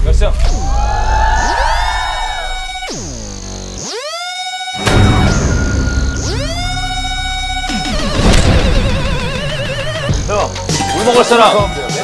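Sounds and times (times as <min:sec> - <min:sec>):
synthesizer music: 0:01.4 - 0:12.0
sharp hit: 0:04.8 - 0:09.6
low bass: 0:04.8 - 0:10.7.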